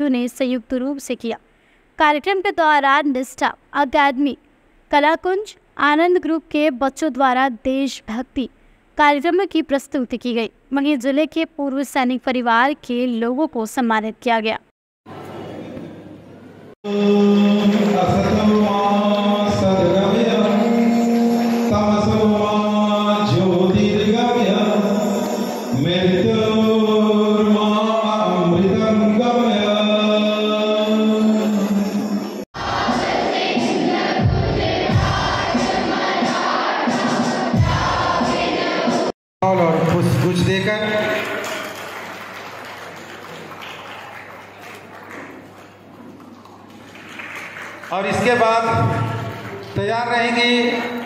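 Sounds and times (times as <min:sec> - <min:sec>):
large hall background noise: 0:00.0 - 0:51.0
person chanting: 0:16.9 - 0:32.1
children singing: 0:32.6 - 0:39.1.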